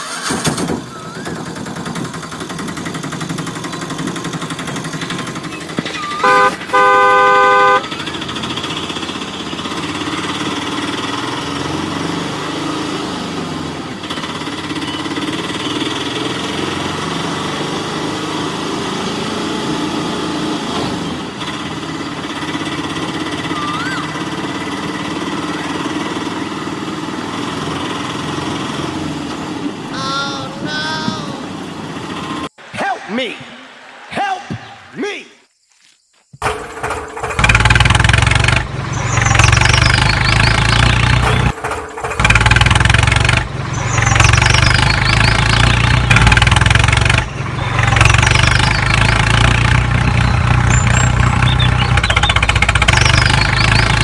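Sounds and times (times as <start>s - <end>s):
truck engine running: 0.0s - 32.6s, 36.4s - 54.0s
truck horn honks: 6.0s - 8.5s.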